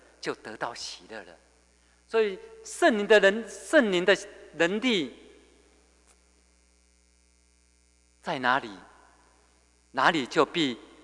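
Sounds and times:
man speaking: 0:00.0 - 0:01.4, 0:02.1 - 0:05.4, 0:08.2 - 0:08.9, 0:10.0 - 0:11.0
electrical mains hum: 0:00.0 - 0:11.0.

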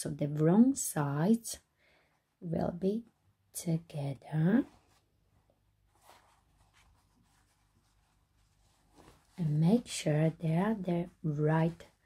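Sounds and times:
fabric rustling: 0:04.3 - 0:12.0.

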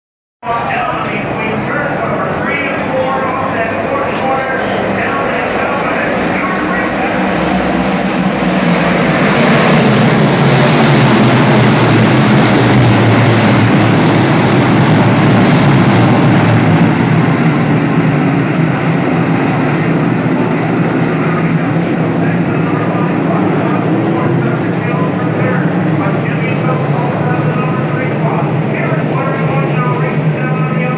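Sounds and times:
race car engines roaring: 0:00.4 - 0:30.9.

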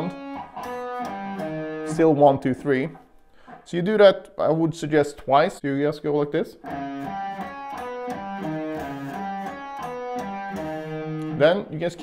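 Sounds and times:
clean electric guitar notes: 0:00.0 - 0:02.1, 0:06.6 - 0:11.7.

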